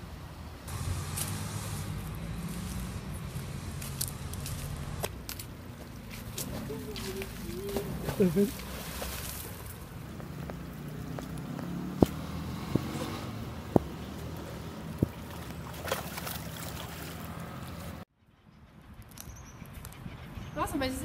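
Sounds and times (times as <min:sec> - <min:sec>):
low motor hum: 0:00.4 - 0:18.0.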